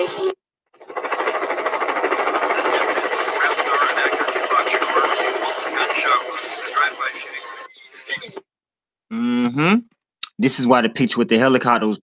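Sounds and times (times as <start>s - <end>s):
helicopter rotor chopping: 0.0s - 8.4s
person speaking: 2.1s - 8.4s.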